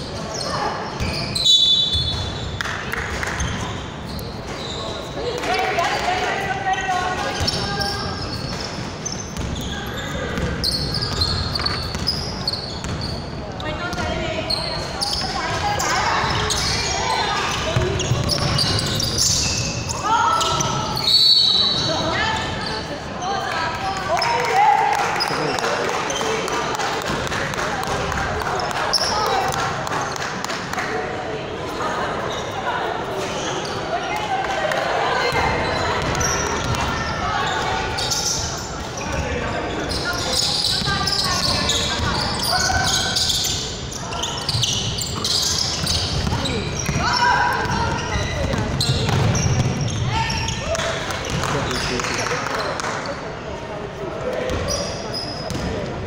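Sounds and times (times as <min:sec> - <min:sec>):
players' voices and shouts: 0:03.5 - 0:56.0
basketball bouncing on wooden court: 0:09.4 - 0:13.1, 0:17.5 - 0:19.1, 0:35.3 - 0:36.9, 0:44.5 - 0:50.1, 0:55.5 - 0:55.8.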